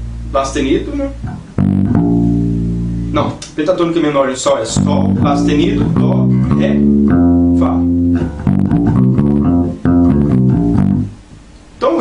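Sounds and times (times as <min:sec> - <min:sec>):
electric bass guitar notes: 0:00.0 - 0:03.6, 0:04.4 - 0:11.5.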